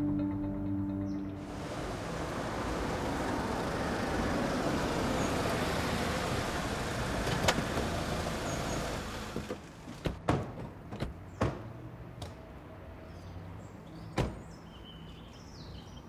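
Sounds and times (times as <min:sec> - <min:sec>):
road traffic: 0:01.2 - 0:16.0.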